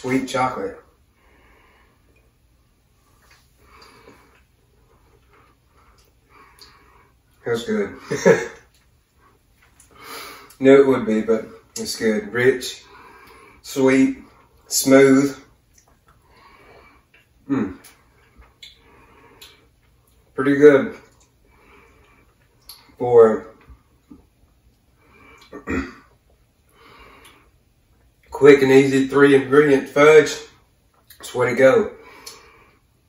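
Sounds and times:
person chewing: 3.0 - 7.4, 15.6 - 20.4, 21.0 - 23.0, 23.6 - 28.3, 32.1 - 32.6
mouth sounds of eating: 15.3 - 28.3, 30.9 - 31.4
small mouth clicks: 17.1 - 20.2, 22.5 - 22.9, 32.2 - 32.5.

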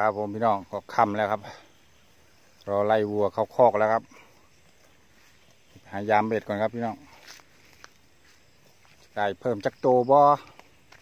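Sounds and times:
man speaking: 0.0 - 1.7, 2.6 - 4.4, 5.7 - 7.3, 9.0 - 10.7
faint open field ambience: 0.0 - 11.0.

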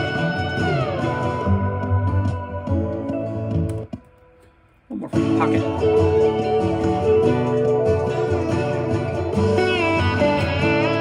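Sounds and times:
electric slide guitar: 0.0 - 3.9, 5.1 - 11.0
backing music: 0.0 - 4.3, 4.9 - 11.0.

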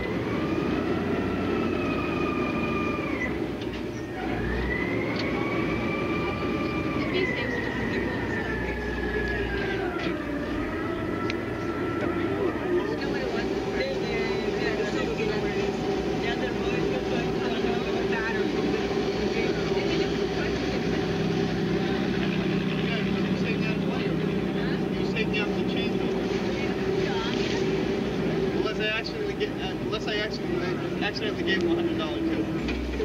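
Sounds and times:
boat engine droning: 0.0 - 33.0
indistinct voices talking: 0.0 - 33.0.

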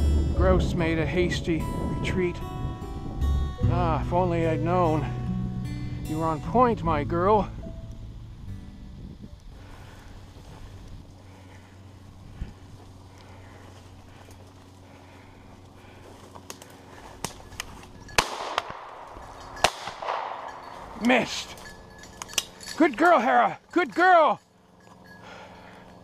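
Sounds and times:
shotgun shot: 18.2 - 19.0, 19.6 - 20.5
shotgun barrels striking tree: 18.2 - 20.6.

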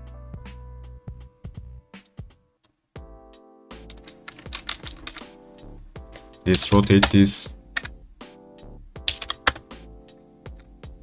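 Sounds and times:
computer keyboard clicks: 3.9 - 5.3, 6.5 - 7.2, 7.8 - 8.0, 9.0 - 9.6.

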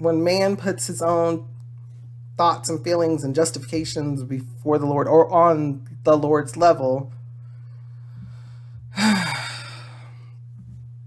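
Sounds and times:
steady low hum: 0.0 - 11.0
man sighing: 8.9 - 10.2.

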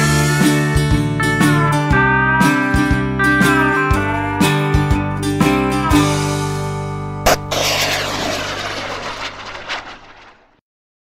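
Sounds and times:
jet-like rushing whoosh: 7.3 - 10.4.

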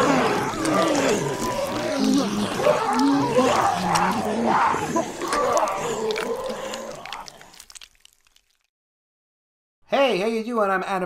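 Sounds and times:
wordless growls and moans: 0.0 - 7.9.

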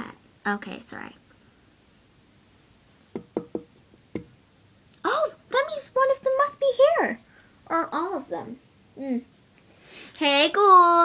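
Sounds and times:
knocking on door: 3.1 - 4.3.

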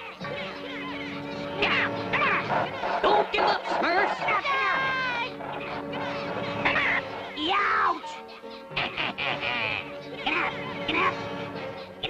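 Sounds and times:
background music: 0.0 - 12.0
cartoon voice squawking: 1.6 - 8.2.

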